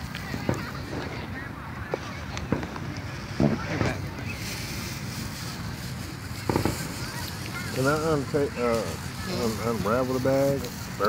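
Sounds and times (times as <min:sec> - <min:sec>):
faint voices: 0:00.0 - 0:11.0
fireworks popping: 0:00.0 - 0:11.0.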